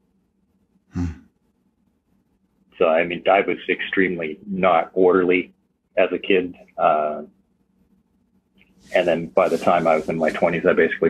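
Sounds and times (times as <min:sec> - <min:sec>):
man humming hmm: 0:01.0 - 0:01.2, 0:04.2 - 0:05.4, 0:06.2 - 0:07.2.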